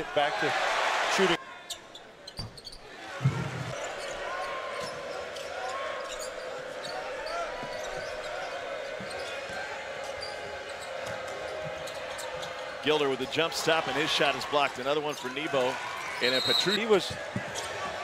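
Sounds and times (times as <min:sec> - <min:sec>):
shoe squeaks and knocks on court: 0:02.3 - 0:02.8.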